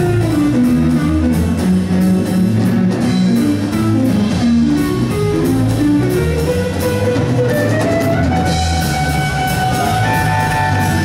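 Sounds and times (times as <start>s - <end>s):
bass guitar: 0.0s - 11.0s
blues guitar melody: 0.0s - 11.0s
drums and cymbal strokes: 0.0s - 11.0s.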